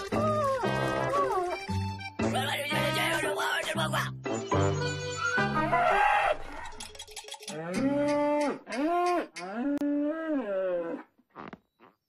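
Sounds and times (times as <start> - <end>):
cartoon cow mooing: 7.5 - 11.0.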